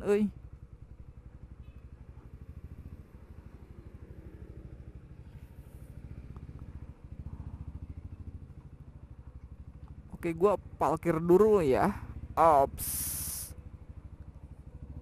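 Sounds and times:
motorcycle engine running: 0.0s - 15.0s.

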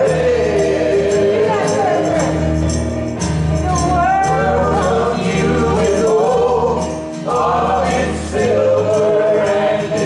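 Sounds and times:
choir singing a hymn: 0.0s - 2.4s, 4.2s - 10.0s
musical accompaniment: 0.0s - 10.0s.

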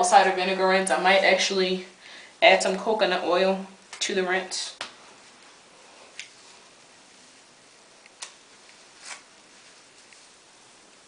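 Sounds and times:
comb crackling through wet hair: 4.7s - 11.0s.

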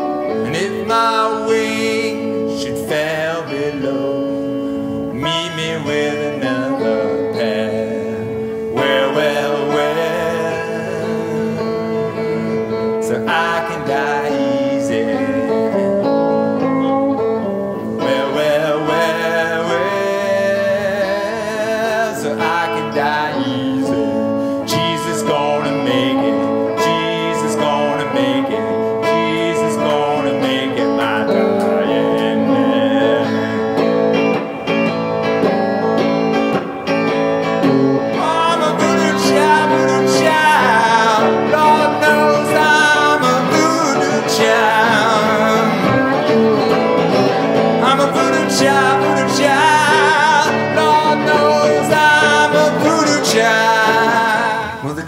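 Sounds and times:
electric guitar: 0.0s - 55.0s
harmonica wavering notes: 0.0s - 55.0s.

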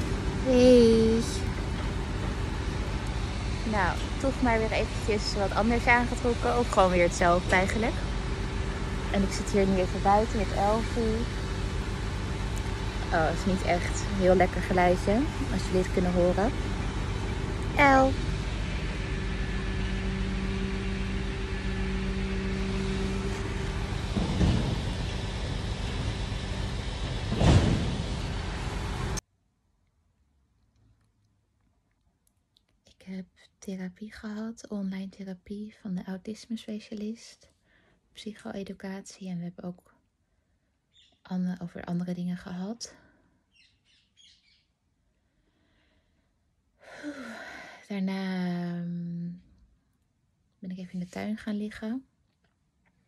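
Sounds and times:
motor vehicle rumble: 0.0s - 29.2s
steady hum: 0.0s - 29.2s
vehicles passing: 0.0s - 29.2s
bird chirps: 40.9s - 41.3s, 43.5s - 44.7s.

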